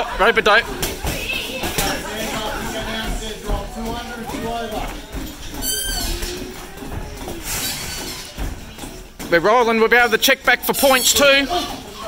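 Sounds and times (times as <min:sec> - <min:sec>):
footwork on canvas: 0:00.6 - 0:10.6.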